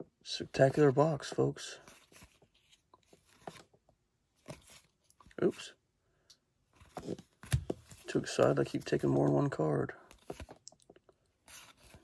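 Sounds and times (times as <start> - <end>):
cards rustling and clicking: 1.8 - 3.8, 4.4 - 5.5, 6.8 - 12.0.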